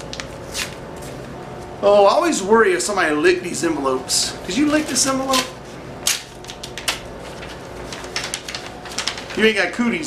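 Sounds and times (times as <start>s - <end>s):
envelope paper rustling: 4.5s - 9.8s.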